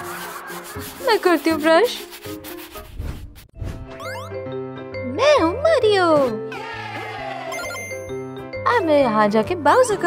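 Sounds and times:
toothbrush scrubbing teeth: 0:00.0 - 0:02.9.

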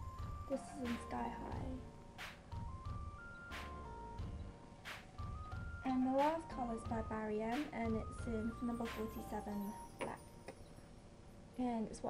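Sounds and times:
synth melody over low beat: 0:00.0 - 0:09.4.

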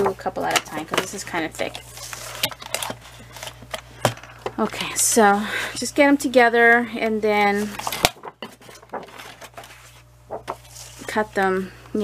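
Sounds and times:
light taps and paper rustling: 0:07.6 - 0:11.1.

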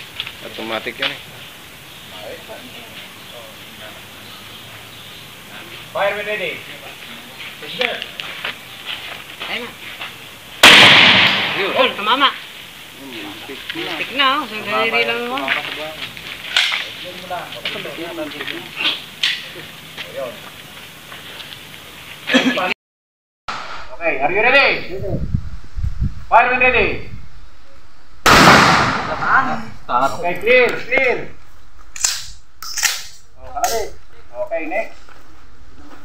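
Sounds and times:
gunshots: 0:10.6 - 0:12.1, 0:28.2 - 0:29.6.

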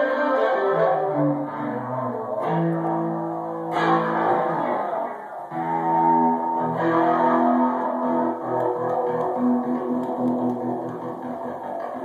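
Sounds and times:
electric guitar strummed: 0:00.0 - 0:12.0.

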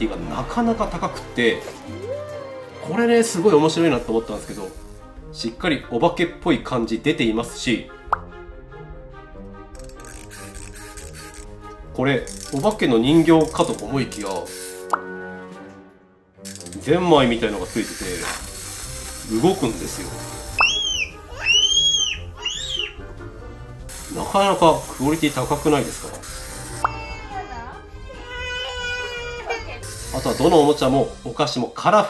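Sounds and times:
soft background music: 0:00.0 - 0:32.0
rising pop sound effect: 0:20.5 - 0:23.0
toddler screaming: 0:20.6 - 0:23.0, 0:26.8 - 0:30.4.

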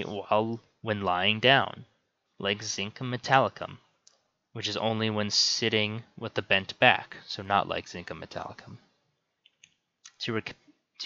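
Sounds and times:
man reading aloud: 0:00.0 - 0:03.9, 0:04.6 - 0:08.8, 0:10.1 - 0:10.6
faint clicks: 0:04.0 - 0:04.3, 0:09.4 - 0:10.2.

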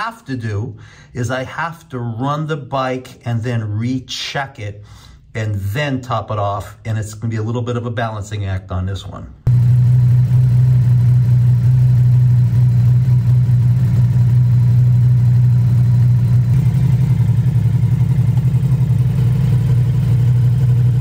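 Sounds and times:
motorcycle engine idling: 0:09.5 - 0:21.0.

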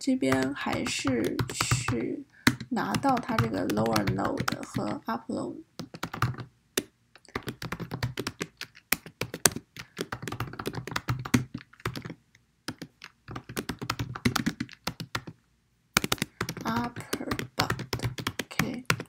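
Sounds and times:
fast typing on keyboard: 0:00.3 - 0:05.1, 0:05.8 - 0:06.5, 0:07.2 - 0:15.4, 0:16.0 - 0:19.0.

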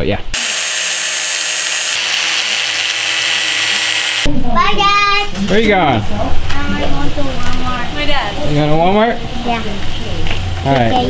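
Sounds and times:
angle grinder cutting: 0:00.4 - 0:04.3.

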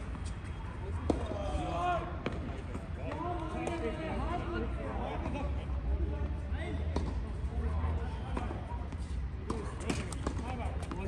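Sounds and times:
tennis ball bouncing on hard court: 0:08.3 - 0:11.0.

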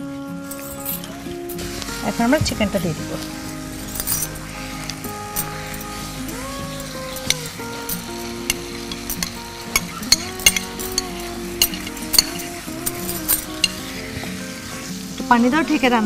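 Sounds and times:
chicken sizzling in hot oil: 0:00.0 - 0:16.0.

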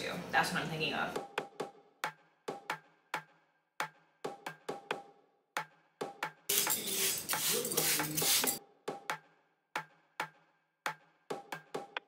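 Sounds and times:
plant mister spraying hiss: 0:06.5 - 0:08.6.

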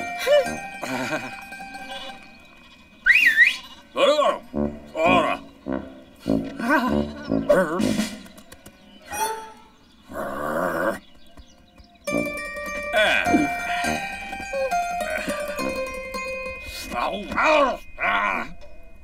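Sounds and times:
light background music: 0:12.1 - 0:18.0.

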